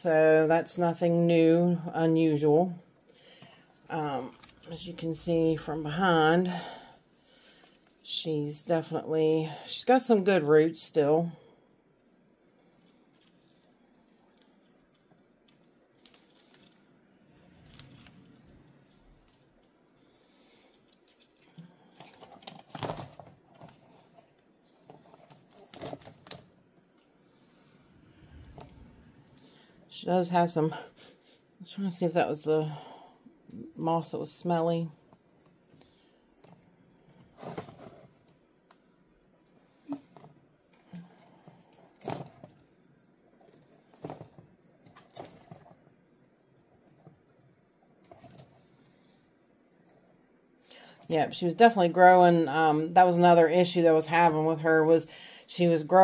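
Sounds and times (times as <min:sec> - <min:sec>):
moss and roots crackling: 0:12.6 - 0:30.8, 0:39.6 - 0:46.0.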